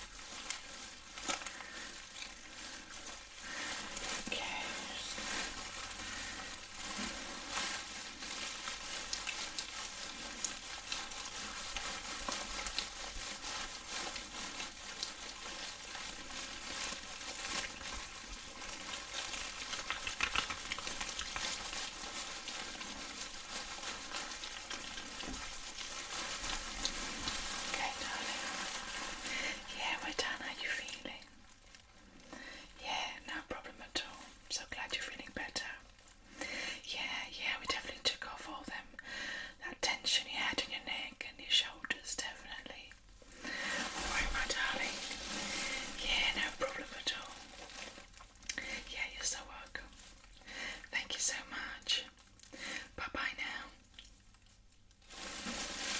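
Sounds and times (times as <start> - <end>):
wet rubbing of gloved hands: 0.0 - 31.9, 41.9 - 50.4.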